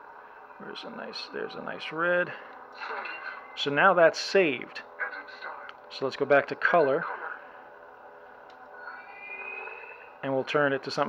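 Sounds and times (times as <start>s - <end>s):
lightsaber hum: 0.1s - 11.0s
faint rising tone: 8.7s - 10.2s.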